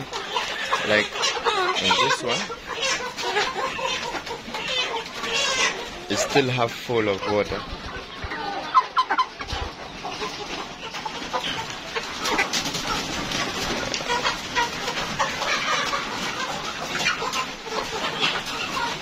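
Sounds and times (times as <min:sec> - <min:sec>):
chickens clucking: 0:00.0 - 0:19.0.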